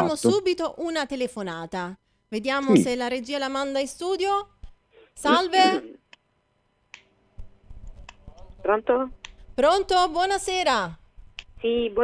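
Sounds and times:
telephone line hum and hiss: 0.0 - 6.9.

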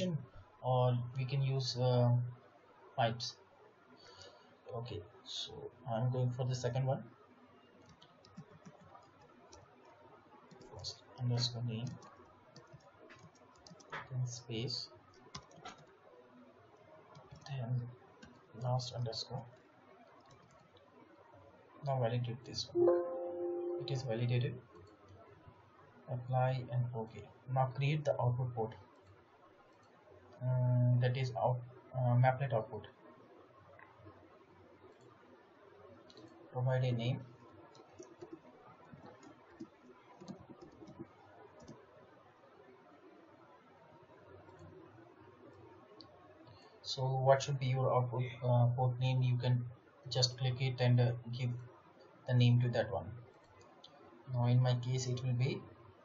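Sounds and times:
computer keyboard keystrokes: 7.8 - 14.2, 15.2 - 15.9, 17.1 - 17.5, 20.2 - 20.8, 37.7 - 41.8.

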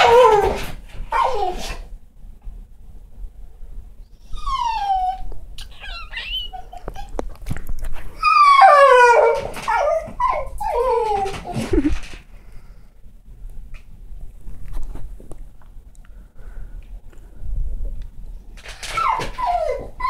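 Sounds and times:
cat chirps: 5.6 - 7.1.

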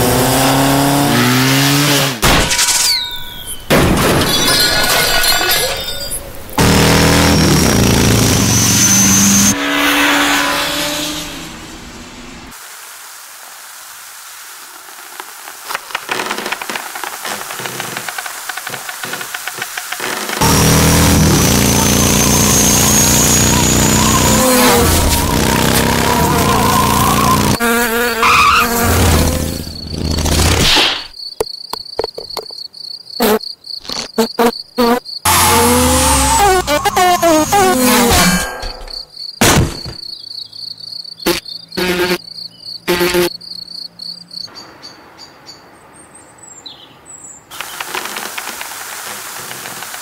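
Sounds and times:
cartoon fly buzzing like a motor: 20.0 - 30.6, 34.1 - 38.9, 41.2 - 42.2, 42.9 - 43.4
thin rising whistle: 21.6 - 27.6
high cricket-like chirp: 31.1 - 35.3, 36.5 - 45.7
insect wings buzzing: 41.0 - 43.6.

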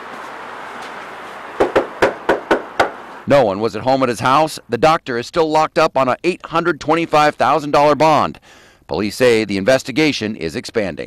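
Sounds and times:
knuckles knocking on door: 1.6 - 3.0.

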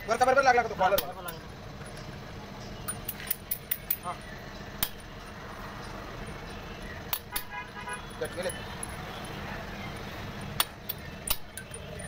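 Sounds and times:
light metallic clinks: 0.8 - 12.0.

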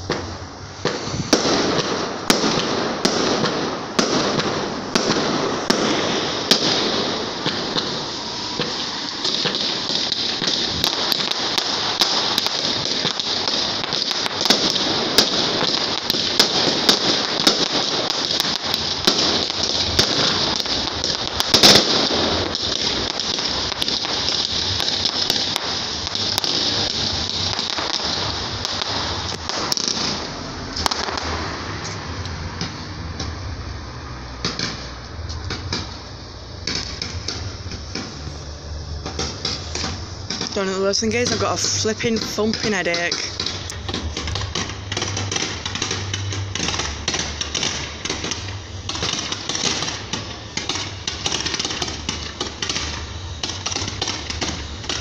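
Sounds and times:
fireworks bangs: 0.0 - 55.0
fireworks crackling: 0.0 - 55.0.

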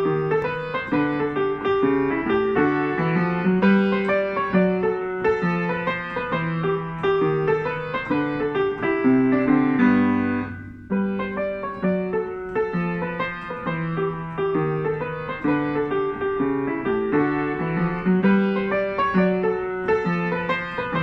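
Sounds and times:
jazz piano playing: 0.0 - 21.0.

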